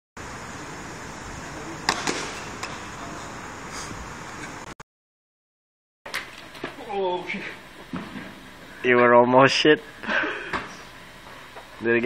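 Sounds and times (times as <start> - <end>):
microphone hiss: 0.2 - 4.7, 6.1 - 12.0.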